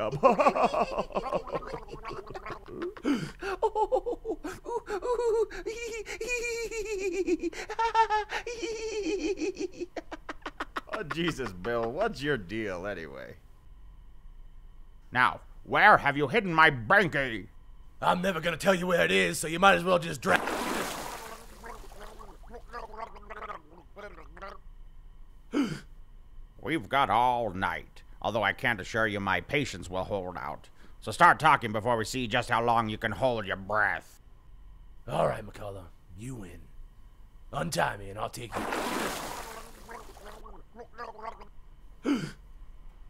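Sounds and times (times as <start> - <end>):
man gargling and gurgling: 20.3 - 24.6, 38.5 - 41.5.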